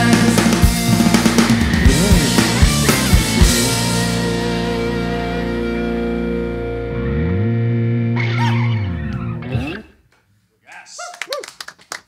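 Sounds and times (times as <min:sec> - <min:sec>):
rock band final chord: 0:00.0 - 0:09.1.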